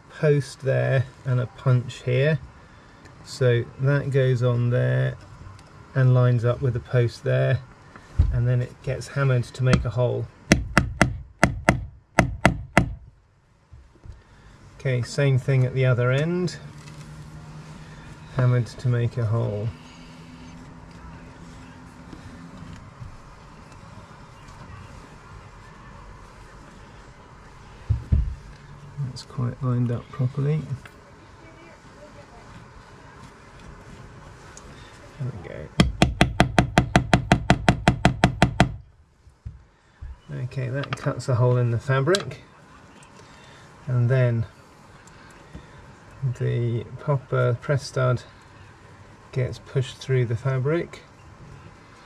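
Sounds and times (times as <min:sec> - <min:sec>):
hammer striking hole punch: 0:10.5 - 0:13.0, 0:35.8 - 0:38.8.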